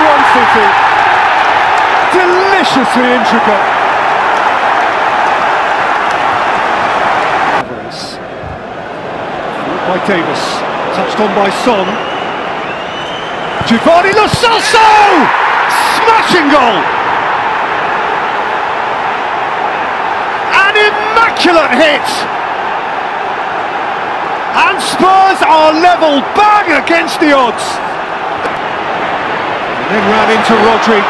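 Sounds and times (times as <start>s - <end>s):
stadium crowd cheering: 0.0s - 31.0s.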